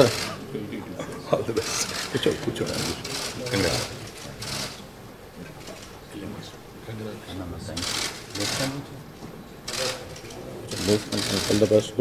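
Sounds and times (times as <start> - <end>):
people chattering in hall: 0.0 - 12.0.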